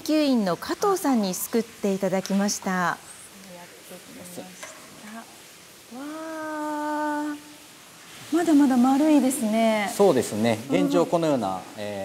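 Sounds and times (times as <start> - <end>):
hiss of aerated water: 0.0 - 12.0.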